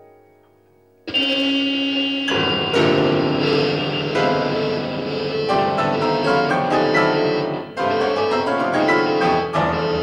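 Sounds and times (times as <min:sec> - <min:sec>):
loud dense keyboard cluster: 0:02.3 - 0:10.0.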